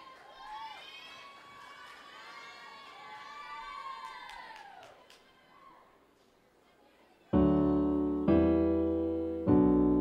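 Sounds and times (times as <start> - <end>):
audience cheering and whooping: 0.0 - 6.0.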